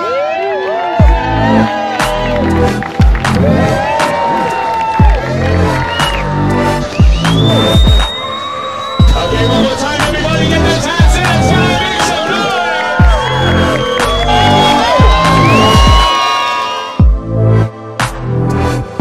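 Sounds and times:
crowd cheering: 0.0s - 17.1s
music with deep bass thump: 1.0s - 3.9s, 5.0s - 8.1s, 9.0s - 11.5s, 13.0s - 16.1s, 17.0s - 19.0s.

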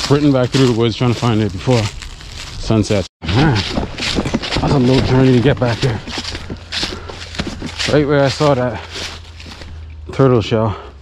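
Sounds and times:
footsteps crunching dry grass: 0.0s - 10.8s
hard breathing: 5.8s - 10.0s, 10.6s - 11.0s.

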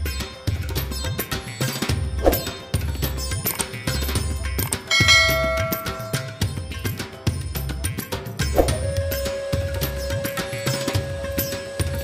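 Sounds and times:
metal temple bell ringing: 4.9s - 6.6s.

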